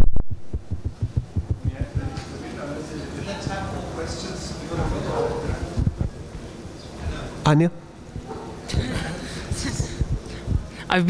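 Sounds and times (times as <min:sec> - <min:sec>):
short low thumps: 0:00.0 - 0:02.3, 0:05.5 - 0:06.3, 0:08.1 - 0:10.7
faint voices murmuring: 0:01.0 - 0:11.0.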